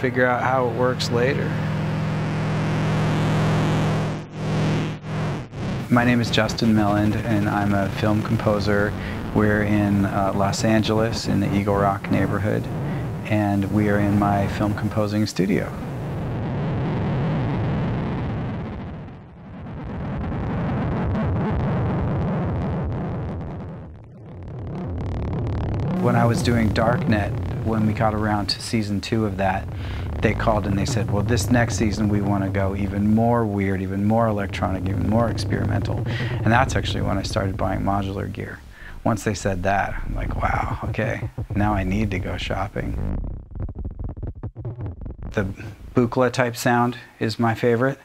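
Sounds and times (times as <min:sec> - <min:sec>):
low synthesizer drone: 0:00.0 - 0:46.1.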